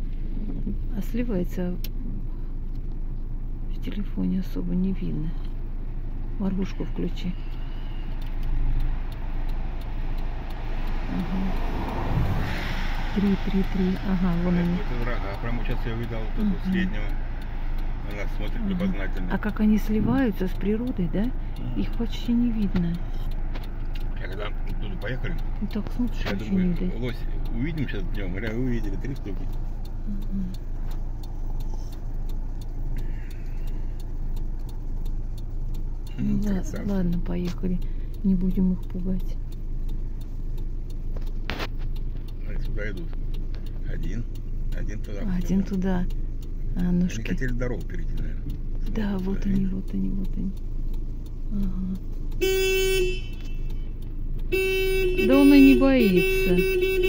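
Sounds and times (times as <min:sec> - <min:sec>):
car engine idling: 0:00.0 - 0:57.0
hazard flasher ticking: 0:01.1 - 0:57.0.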